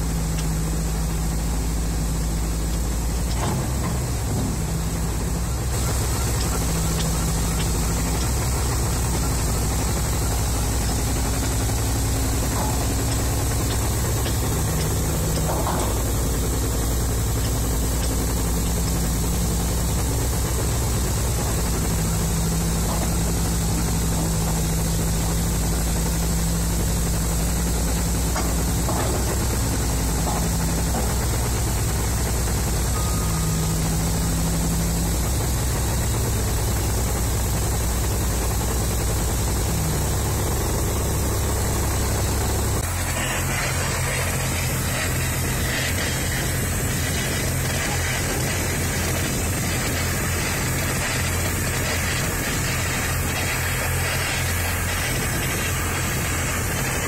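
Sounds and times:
diesel engine idling: 0.0 - 57.0
low hum: 0.0 - 57.0.

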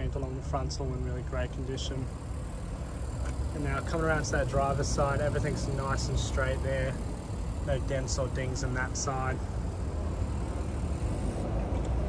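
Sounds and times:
low outdoor rumble: 0.0 - 12.0.

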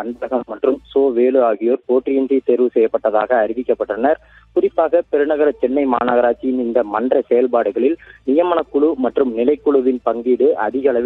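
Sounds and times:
man speaking over telephone line: 0.0 - 11.0.

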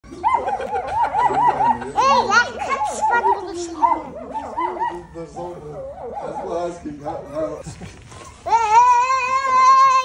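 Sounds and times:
puppies whining and yipping: 0.1 - 8.5.

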